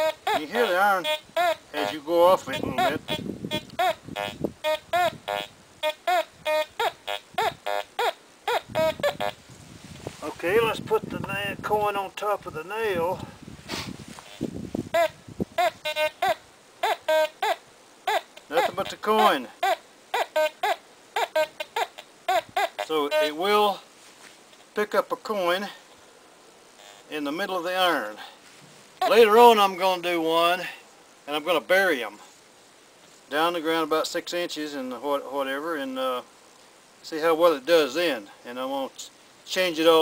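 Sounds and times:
metal detector short beeps: 0.0 - 0.4, 8.6 - 9.4
metal detector high beeps: 0.0 - 2.0, 2.6 - 9.4, 15.0 - 17.4
metal detector low tones: 0.0 - 9.4.

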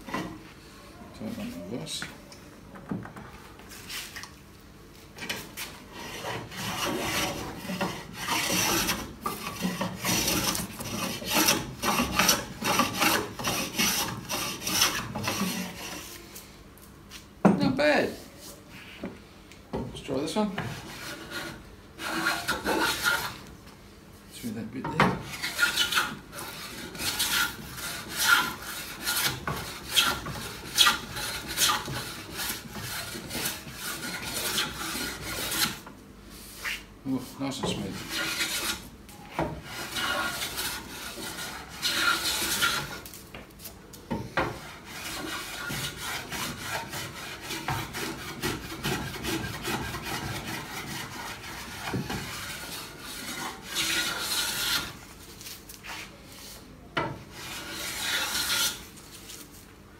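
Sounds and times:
hand plane rasping on wood: 5.9 - 16.0, 20.6 - 23.4, 25.2 - 35.8, 38.0 - 38.8, 39.6 - 43.0, 44.5 - 55.0, 57.3 - 58.8.

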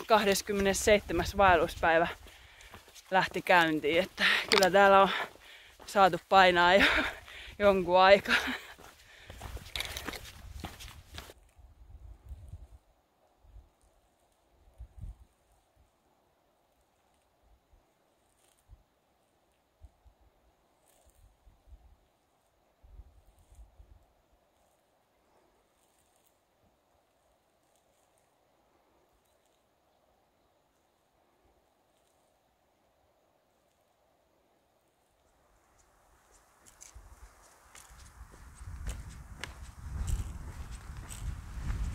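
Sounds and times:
soft low bumps: 36.3 - 41.9.

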